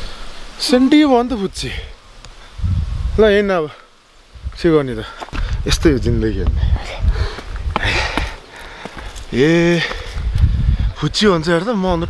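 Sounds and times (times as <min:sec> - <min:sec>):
low microphone rumble: 0:02.5 - 0:03.4, 0:09.1 - 0:11.0.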